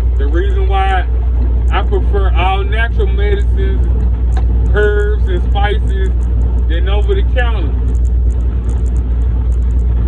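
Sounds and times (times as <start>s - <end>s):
truck engine rumble: 0.0s - 10.0s.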